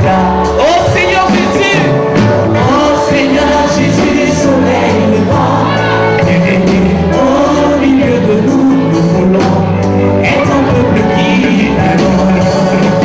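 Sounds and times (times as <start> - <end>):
gospel band playing: 0.0 - 13.0
group of voices singing: 0.0 - 13.0
steady drum beat: 0.0 - 13.0.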